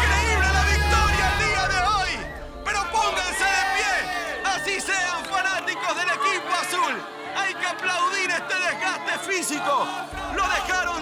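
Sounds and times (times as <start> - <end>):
background music: 0.0 - 11.0
people shouting and cheering: 0.0 - 11.0.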